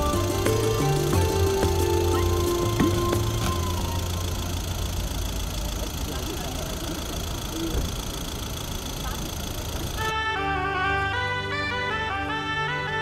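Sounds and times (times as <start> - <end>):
stepping bass line: 0.0 - 5.1
background music with held notes: 0.0 - 5.2, 10.1 - 13.0
low steady rumble: 0.0 - 12.7.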